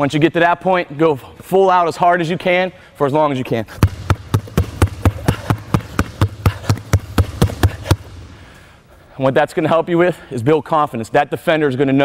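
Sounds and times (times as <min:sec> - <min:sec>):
basketballs bouncing on hardwood: 0:03.8 - 0:08.3.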